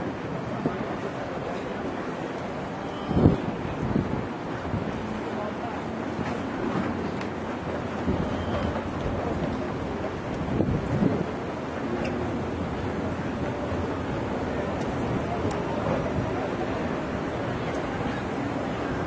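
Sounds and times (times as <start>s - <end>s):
city traffic noise: 0.0s - 19.0s
wind buffeting microphone: 0.0s - 19.0s.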